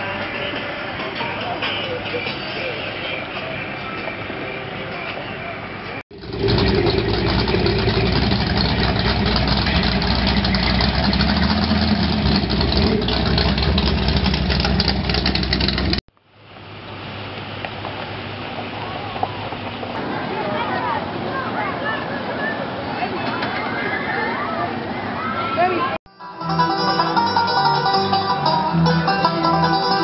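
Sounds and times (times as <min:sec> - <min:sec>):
voices outdoors: 0:00.0 - 0:06.1, 0:16.5 - 0:26.0
car engine rumbling: 0:06.1 - 0:21.2, 0:26.4 - 0:30.0.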